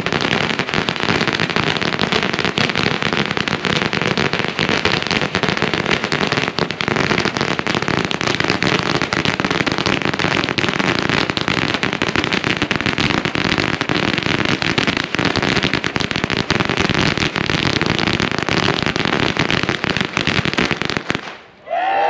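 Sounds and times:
firecrackers going off: 0:00.0 - 0:21.6.

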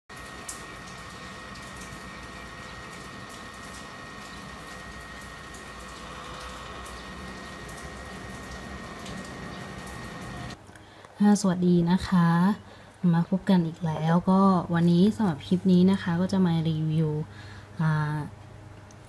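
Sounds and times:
laptop fan whirring with high whine: 0:00.1 - 0:10.6.

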